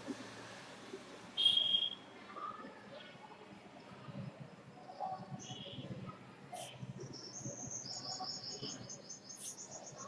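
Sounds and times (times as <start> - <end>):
scratchy hisses: 9.4 - 9.6.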